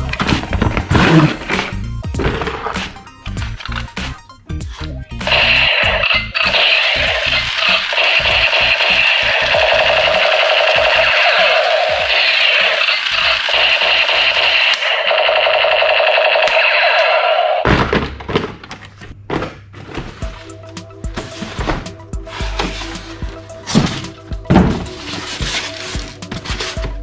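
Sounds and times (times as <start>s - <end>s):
toy gun rapid-fire buzz: 5.3s - 17.6s.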